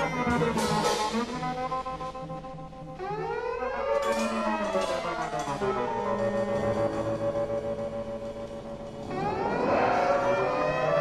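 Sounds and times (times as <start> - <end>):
tones gliding upward in pitch: 9.0 - 11.0.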